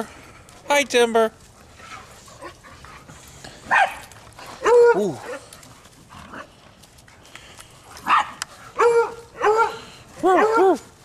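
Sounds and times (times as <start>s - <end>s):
dogs barking and yipping: 1.6s - 6.7s, 7.8s - 11.0s.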